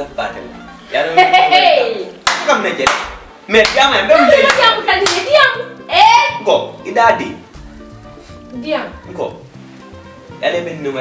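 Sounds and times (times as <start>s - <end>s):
hands clapping: 2.1s - 5.4s.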